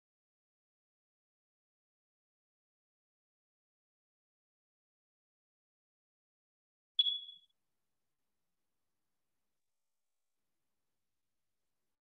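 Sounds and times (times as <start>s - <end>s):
high electronic notification ding: 7.0s - 7.4s.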